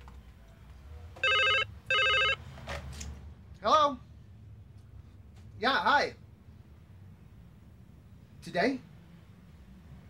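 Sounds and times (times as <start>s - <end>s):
desk telephone ringing: 1.2s - 2.4s.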